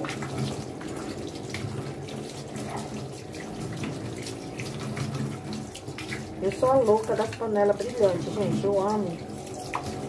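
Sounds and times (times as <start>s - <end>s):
tap water splashing into sink: 0.0s - 10.0s.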